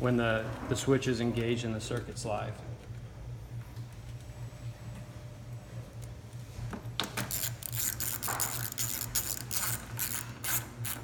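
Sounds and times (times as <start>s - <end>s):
hand ratchet clicking: 7.0s - 11.0s.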